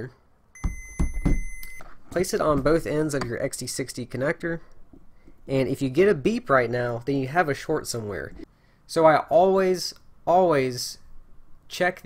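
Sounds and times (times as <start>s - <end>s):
clicks and low thumps: 0.6s - 1.8s
multimeter high beep: 0.6s - 1.9s.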